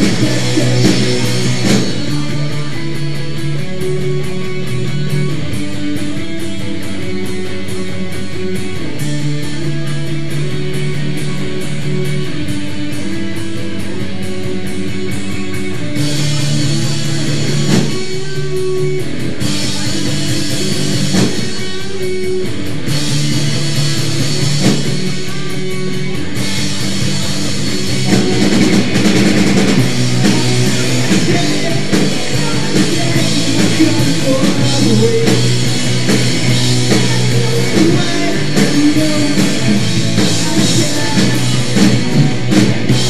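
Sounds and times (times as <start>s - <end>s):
bass guitar: 0.0s - 43.0s
drum kit: 0.0s - 43.0s
electric guitars: 0.0s - 43.0s.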